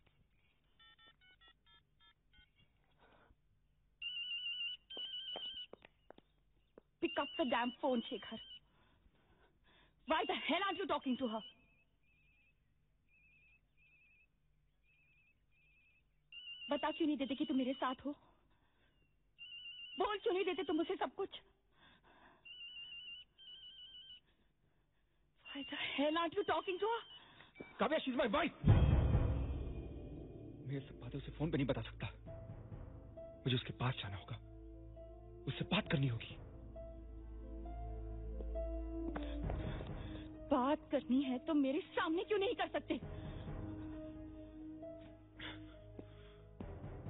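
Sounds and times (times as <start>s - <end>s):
phone keypad beeping: 0.8s - 2.7s, 22.5s - 24.2s.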